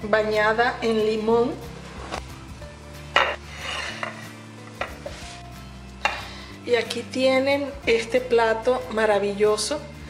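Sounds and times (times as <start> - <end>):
soft background music: 0.0 - 10.0
plate knocking on countertop: 4.8 - 5.2.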